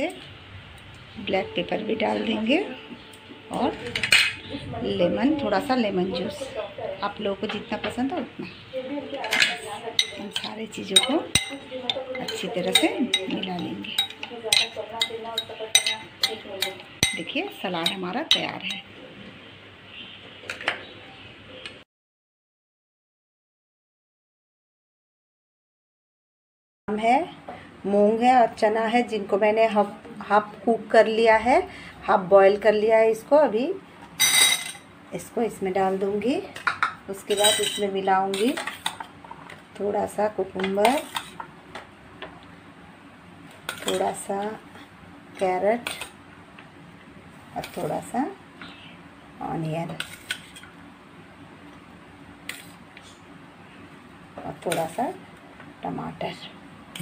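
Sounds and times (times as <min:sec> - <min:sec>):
spoon clinking glass bowl: 0:09.3 - 0:18.9, 0:34.2 - 0:34.9, 0:36.7 - 0:37.9.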